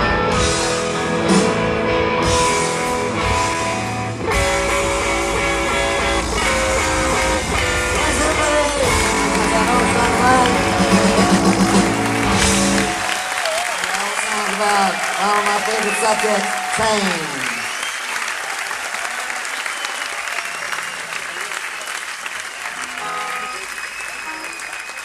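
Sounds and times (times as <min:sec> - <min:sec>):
bass guitar: 0:00.0 - 0:13.1
electric guitars playing: 0:00.0 - 0:13.2, 0:22.8 - 0:24.9
drums: 0:00.0 - 0:13.6.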